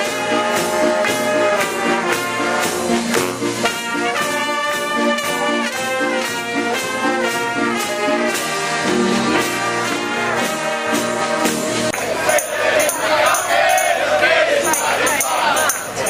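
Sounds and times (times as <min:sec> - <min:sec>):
brass band march music: 0:00.0 - 0:16.0.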